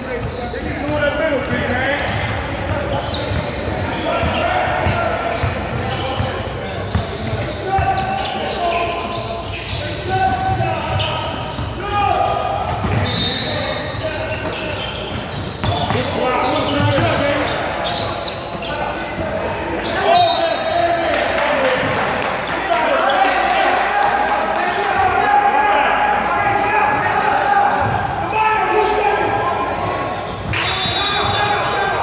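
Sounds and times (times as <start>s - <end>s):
referee's whistle: 12.5s - 15.0s, 19.8s - 21.0s, 30.2s - 32.0s.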